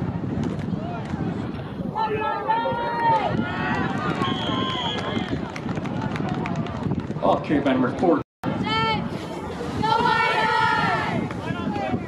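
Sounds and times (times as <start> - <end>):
spectators shouting: 1.9 - 5.3, 8.6 - 12.0
referee's whistle: 4.2 - 5.2.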